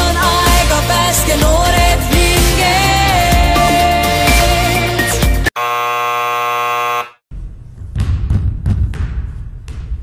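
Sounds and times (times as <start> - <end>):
electronic buzzer: 5.5 - 7.2.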